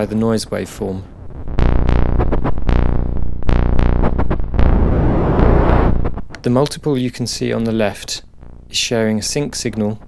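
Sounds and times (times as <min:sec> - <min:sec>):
synthesizer noise hiss: 0:00.0 - 0:10.0
buzzy synthesizer sequence: 0:01.0 - 0:09.6.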